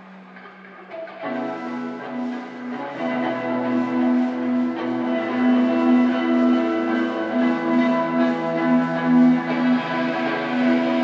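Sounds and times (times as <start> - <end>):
live rock band playing: 1.1 - 11.0.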